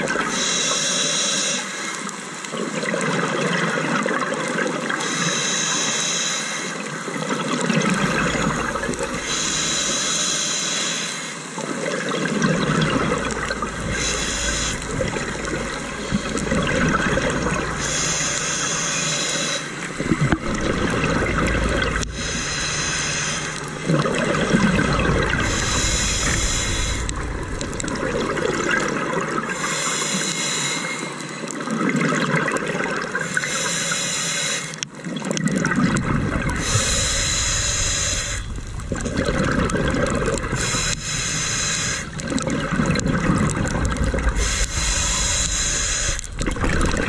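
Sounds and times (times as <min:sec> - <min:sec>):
regulator hissing inhale: 0:00.3 - 0:02.1, 0:05.0 - 0:06.9, 0:08.2 - 0:11.6, 0:12.6 - 0:28.0, 0:28.6 - 0:31.5, 0:33.2 - 0:34.8, 0:36.6 - 0:39.0, 0:40.4 - 0:42.4, 0:44.2 - 0:47.0
exhaled bubbles rushing: 0:07.2 - 0:09.6, 0:11.7 - 0:19.1, 0:19.7 - 0:29.7, 0:31.6 - 0:33.2, 0:35.0 - 0:47.0.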